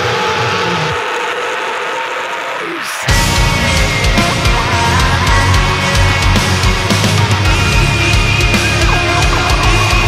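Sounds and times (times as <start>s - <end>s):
bass and drums: 3.1s - 10.0s.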